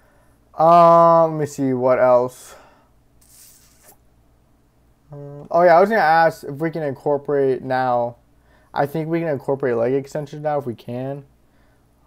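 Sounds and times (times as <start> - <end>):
short soft hiss: 3.2 - 4.1.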